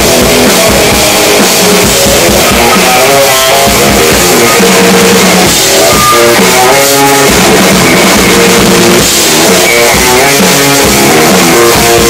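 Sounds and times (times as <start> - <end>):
drum kit with cymbals: 0.0 - 12.0
electric guitar sustained notes: 0.0 - 12.0.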